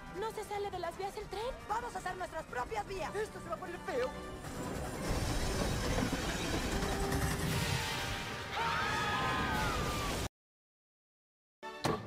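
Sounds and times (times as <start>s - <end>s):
train rumble and clatter: 4.4s - 7.7s.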